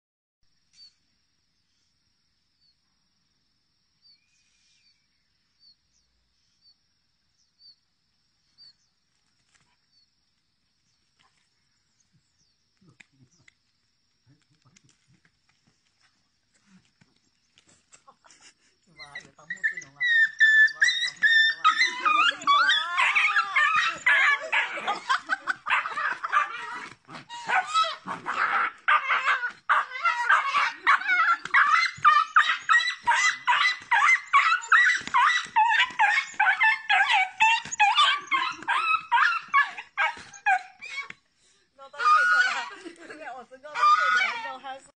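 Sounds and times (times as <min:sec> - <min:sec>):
small dog yelping and whining: 0:19.0 - 0:41.2, 0:42.0 - 0:42.7, 0:43.8 - 0:44.6.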